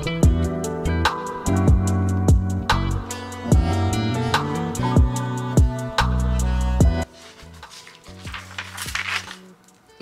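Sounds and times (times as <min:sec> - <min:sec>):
soft background music: 0:00.0 - 0:10.0
paper page rustling: 0:07.0 - 0:10.0.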